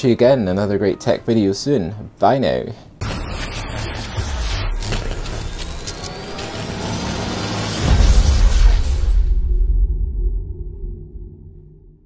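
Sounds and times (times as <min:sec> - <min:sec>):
noisy whoosh: 0:03.1 - 0:12.0
rising tone: 0:03.2 - 0:12.0
deep boom: 0:07.2 - 0:12.0.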